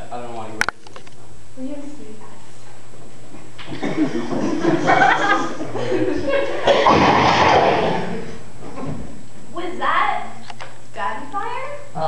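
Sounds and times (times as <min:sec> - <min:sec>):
person laughing: 0:03.6 - 0:08.2.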